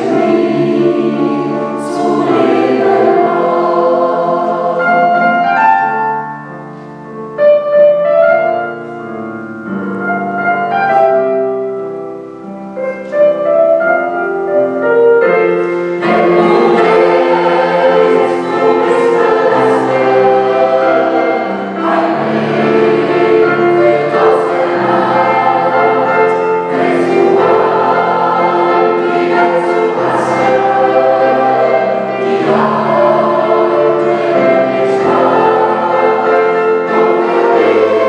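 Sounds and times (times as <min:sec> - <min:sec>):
mixed choir singing: 0:00.0 - 0:06.3, 0:15.4 - 0:38.0
piano accompaniment: 0:00.0 - 0:38.0.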